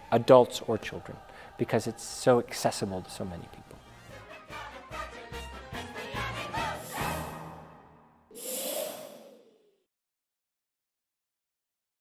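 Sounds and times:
whoosh sound effect: 8.3 - 9.8.

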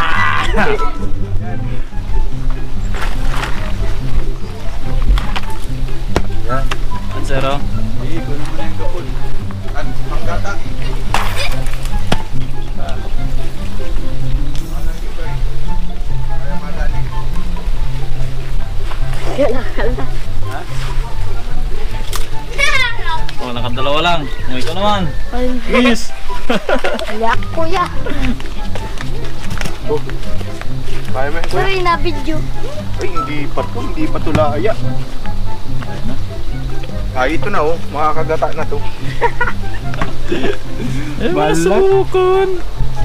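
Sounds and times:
children shouting: 0.0 - 1.0
music with repeating bass line: 0.0 - 43.0.

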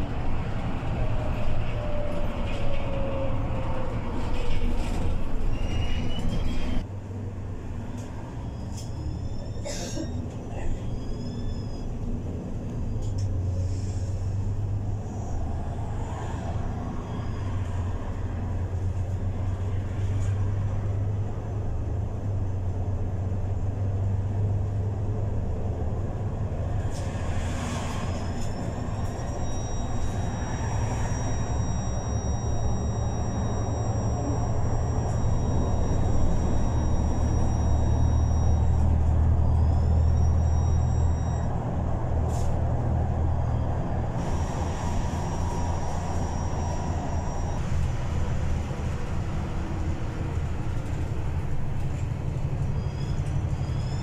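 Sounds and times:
engine and road rumble: 0.0 - 54.0.

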